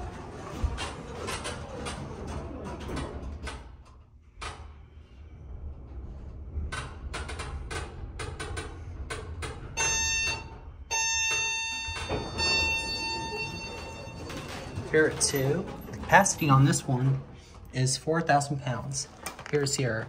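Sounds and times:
elevator car humming: 0:00.0 - 0:20.0
elevator clicks: 0:06.8 - 0:17.3
electronic tones: 0:09.8 - 0:14.9.

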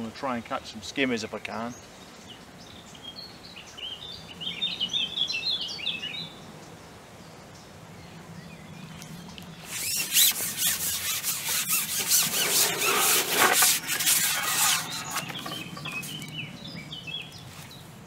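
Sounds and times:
fishing pole sections rubbing: 0:09.6 - 0:16.3.

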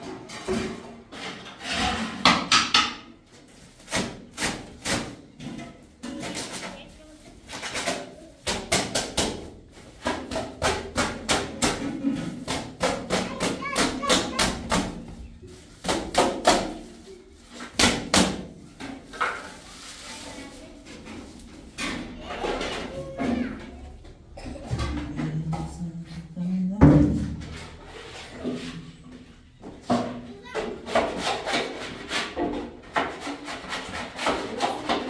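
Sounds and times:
hand tool scraping and knocking: 0:00.0 - 0:35.0.

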